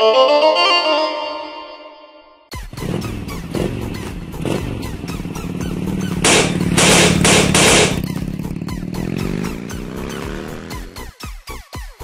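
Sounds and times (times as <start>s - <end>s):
motorcycle engine revving: 2.5s - 11.2s.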